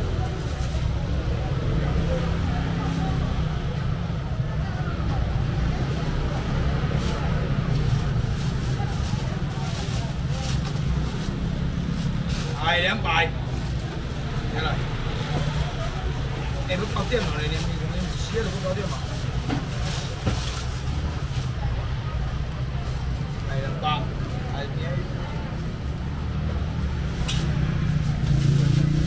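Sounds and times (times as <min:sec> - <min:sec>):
people talking: 0:00.0 - 0:29.0.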